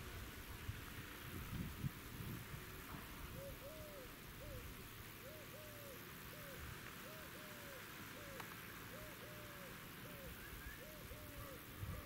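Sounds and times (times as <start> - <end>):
outdoor background hiss: 0.0 - 12.0
dove cooing: 3.2 - 12.0.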